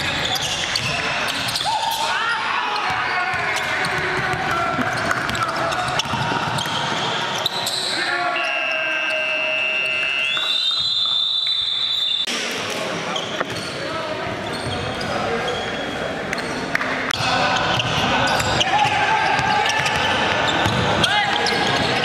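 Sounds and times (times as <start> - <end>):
players' voices echoing: 0.0 - 11.2, 12.2 - 22.0
ball bouncing on hardwood court: 3.3 - 7.0, 17.7 - 22.0.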